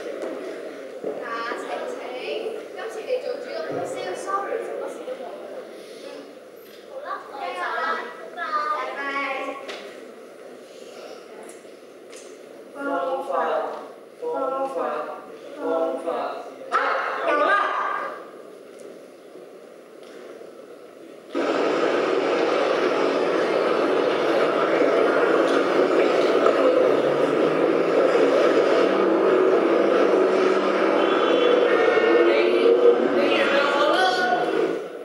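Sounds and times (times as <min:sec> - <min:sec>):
babble of many voices: 0:00.0 - 0:35.0.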